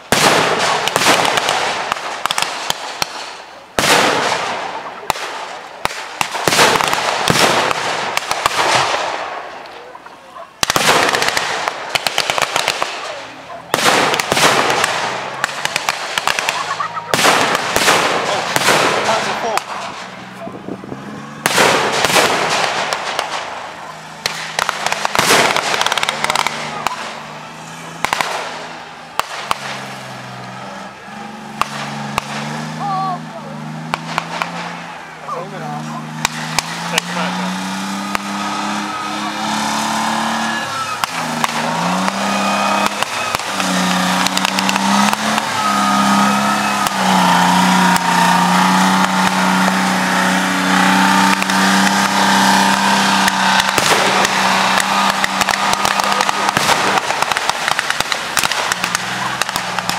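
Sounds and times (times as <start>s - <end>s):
pyrotechnic bangs with crackling: 0.0s - 9.9s, 10.5s - 59.9s.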